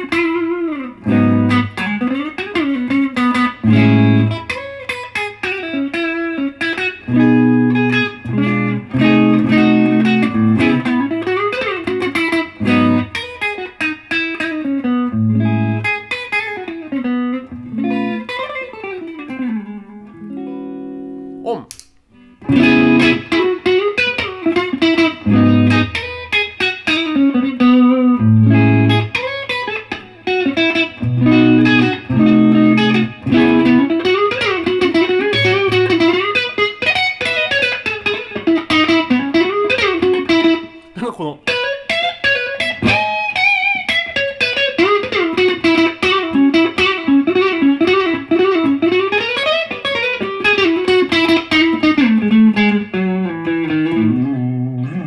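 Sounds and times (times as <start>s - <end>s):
electric guitar lead line: 0.0s - 21.5s, 22.2s - 55.0s.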